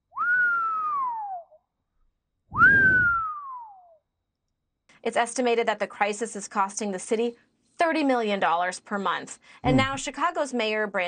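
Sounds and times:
person whistling: 0.2s - 1.6s, 2.5s - 3.9s.

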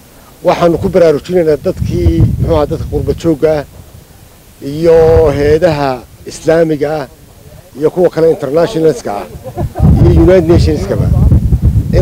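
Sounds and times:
man speaking into a microphone: 0.4s - 3.7s, 4.6s - 12.0s
wind buffeting microphone: 0.7s - 12.0s.

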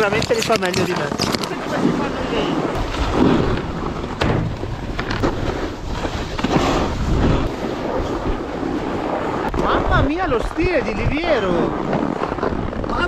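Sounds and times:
wind on microphone: 0.0s - 13.0s
snowboard sliding on snow: 1.5s - 13.0s
sharp knocks: 4.1s - 5.5s.

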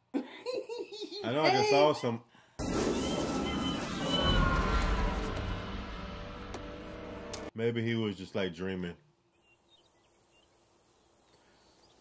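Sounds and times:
faint bird chirps: 9.3s - 12.0s.

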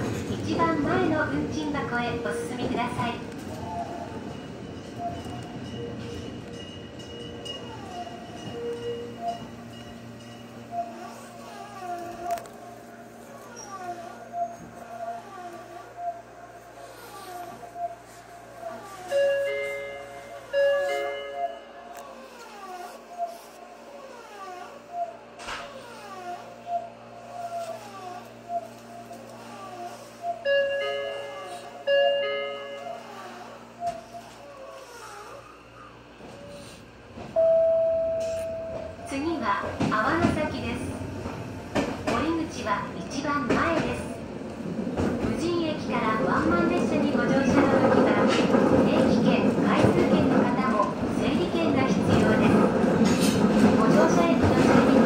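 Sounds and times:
electric train hum: 0.0s - 55.0s
train running noise: 0.0s - 55.0s
chiming signal: 4.2s - 11.4s, 19.0s - 21.9s, 30.4s - 34.2s, 37.4s - 39.1s.

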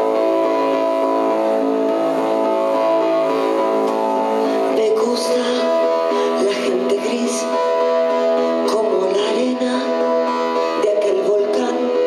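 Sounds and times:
synthesizer drone chord: 0.0s - 12.0s.

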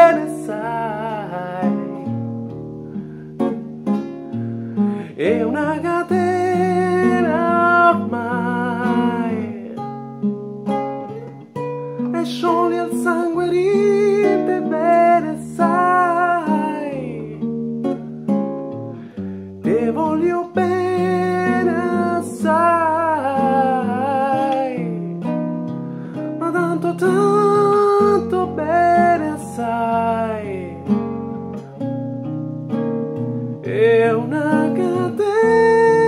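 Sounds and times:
man singing: 0.0s - 2.3s, 5.0s - 9.9s, 12.1s - 17.5s, 19.6s - 25.0s, 26.4s - 31.0s, 33.6s - 36.0s
acoustic guitar chords: 0.0s - 36.0s.

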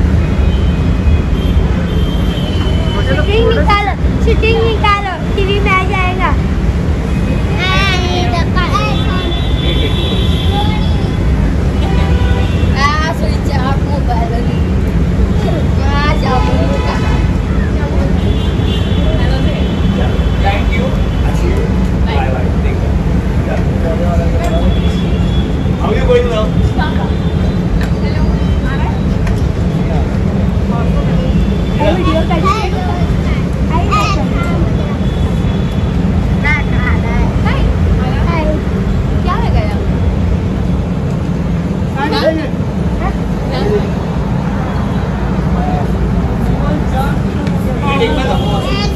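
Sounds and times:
low rumble of street noise: 0.0s - 48.9s
people talking: 2.4s - 6.5s, 7.5s - 11.1s, 11.8s - 14.6s, 15.2s - 18.3s, 19.0s - 25.0s, 25.8s - 35.3s, 36.3s - 40.0s, 41.8s - 48.9s
people calling out: 47.8s - 48.9s.

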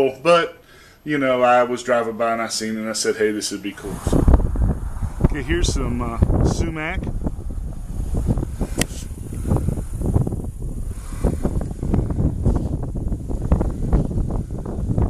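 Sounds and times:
wind buffeting microphone: 3.7s - 15.0s.

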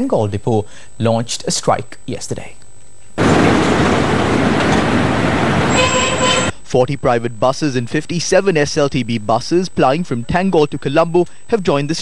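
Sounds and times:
loud street traffic: 3.2s - 6.5s
vehicle horn sounding: 5.1s - 6.6s.

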